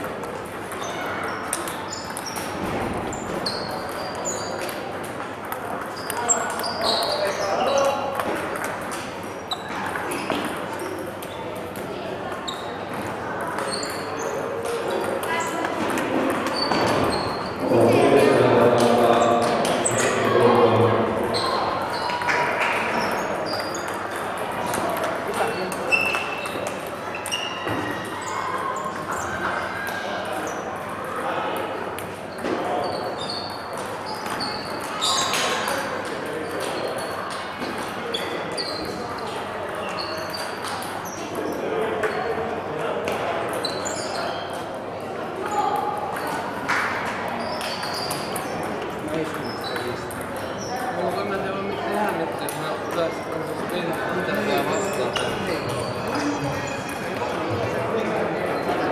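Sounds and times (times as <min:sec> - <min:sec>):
table tennis balls clicking: 0:00.0 - 0:17.2, 0:21.2 - 0:28.2, 0:28.9 - 0:42.1, 0:45.5 - 0:51.4, 0:52.0 - 0:57.6
background chatter: 0:00.0 - 0:58.9.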